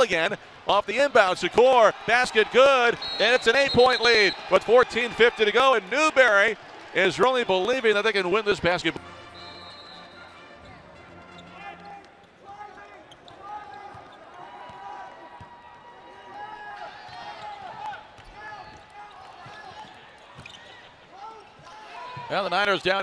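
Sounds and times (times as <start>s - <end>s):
players' voices: 0.0s - 9.2s, 17.1s - 23.0s.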